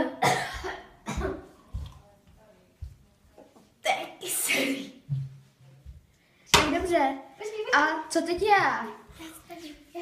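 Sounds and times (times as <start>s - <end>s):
girl coughing and spluttering: 0.0s - 1.6s.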